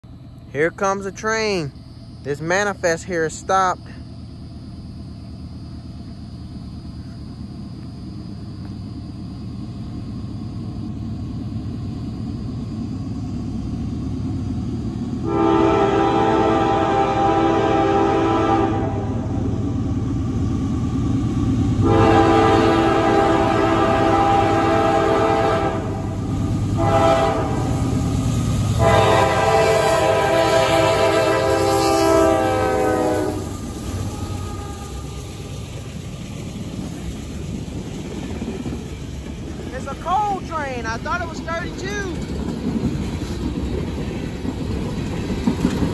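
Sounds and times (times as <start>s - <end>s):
train rumble: 0.0s - 45.9s
locomotive air horn blasts: 15.2s - 19.3s, 21.8s - 26.2s, 26.8s - 27.8s, 28.8s - 33.5s, 34.1s - 35.2s.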